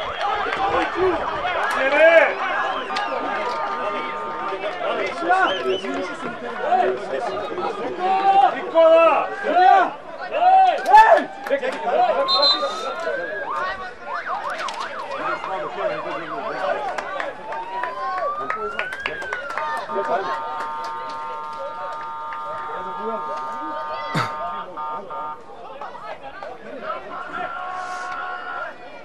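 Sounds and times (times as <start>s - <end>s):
crowd voices: 0.0s - 29.0s
sirens rising and warbling: 17.4s - 25.4s.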